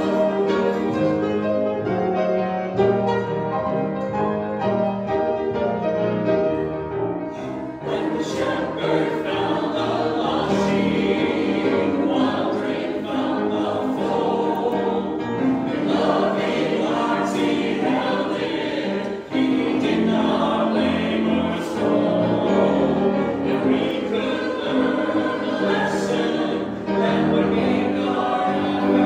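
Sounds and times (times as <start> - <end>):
church choir singing: 0.0 - 29.0.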